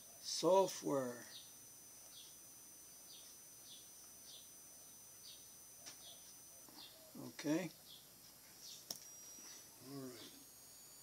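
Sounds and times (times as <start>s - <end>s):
faint bird chirps: 1.2s - 11.0s.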